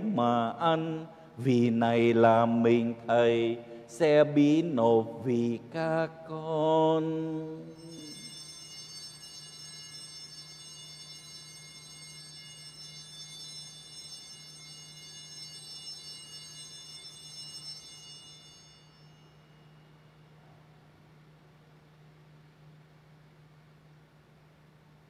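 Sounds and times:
steady low hum: 0.0s - 25.0s
bell ringing: 7.6s - 20.1s.

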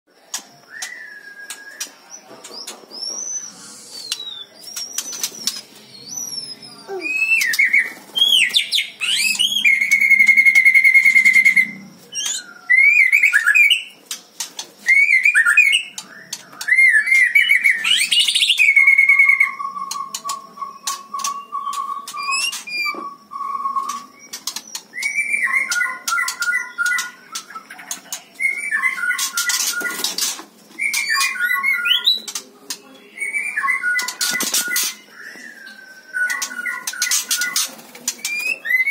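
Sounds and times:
bird singing whistles and trills: 0.6s - 14.0s, 14.8s - 38.9s.

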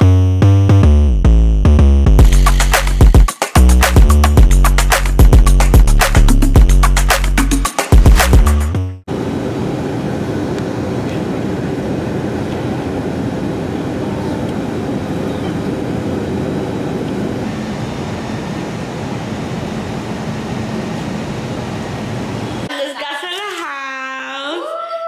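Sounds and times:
jet engine and airflow drone: 9.0s - 22.7s.

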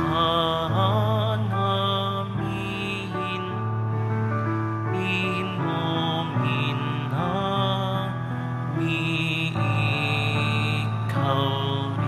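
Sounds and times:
slow hymn music: 0.0s - 12.0s.

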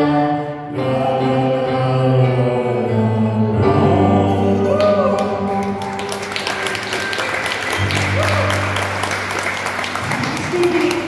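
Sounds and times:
electric keyboard chords: 0.0s - 11.0s
audience applause: 4.8s - 11.0s.

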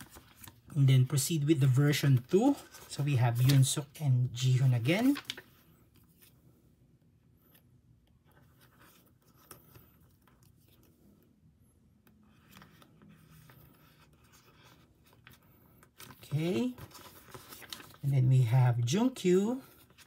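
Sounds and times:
plastic sleeves rustling: 0.0s - 6.7s, 7.4s - 20.0s
sleeve pages clicking: 16.0s - 18.0s.

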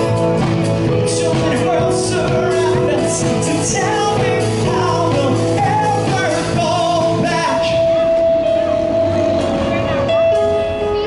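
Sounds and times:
man singing: 0.0s - 8.4s
drum kit: 0.0s - 11.0s
keyboard: 0.0s - 11.0s.

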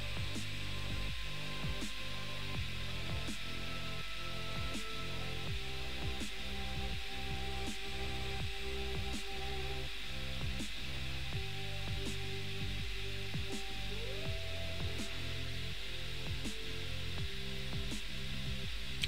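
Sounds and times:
background music with held tones: 0.0s - 19.0s.

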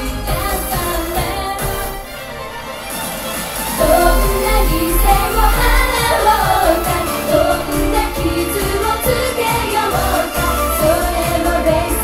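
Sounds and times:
female vocal group singing: 0.0s - 2.2s, 3.8s - 12.0s
backing track with steady beat: 3.0s - 12.0s.

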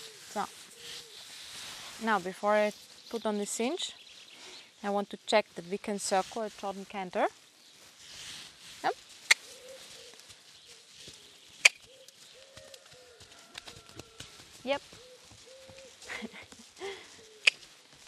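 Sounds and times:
bird hooting: 9.3s - 10.2s, 15.0s - 16.4s
horse hoofbeats on sand: 10.0s - 18.0s.

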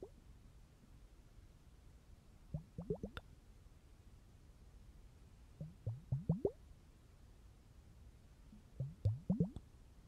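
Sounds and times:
bubbles plopping in water: 2.6s - 3.2s, 5.6s - 6.6s, 8.8s - 9.6s.

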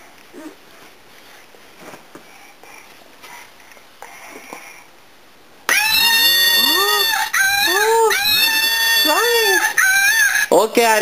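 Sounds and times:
toy playing warbling animal call: 5.7s - 10.6s.

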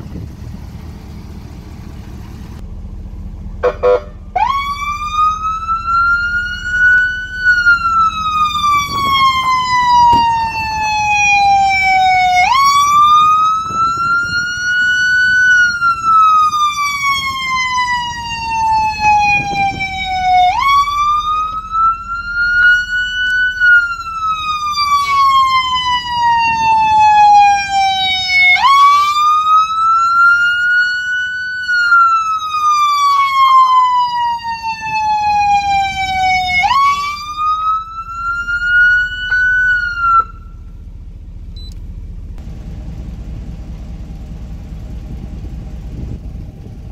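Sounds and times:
electronic police siren wailing: 3.6s - 40.7s.

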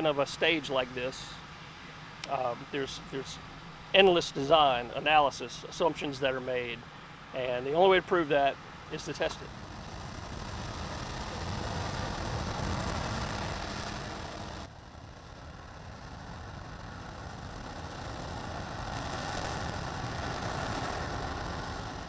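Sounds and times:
rocket engine roaring: 0.0s - 22.0s.

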